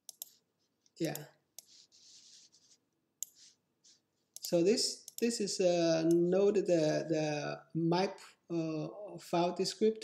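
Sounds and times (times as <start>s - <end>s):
sharp computer clicks: 0.0s - 0.4s, 4.4s - 5.4s.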